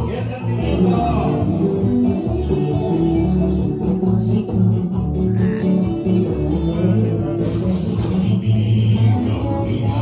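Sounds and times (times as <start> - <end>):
bachata music with plucked guitar: 0.0 - 10.0
prominent bass line: 0.0 - 10.0.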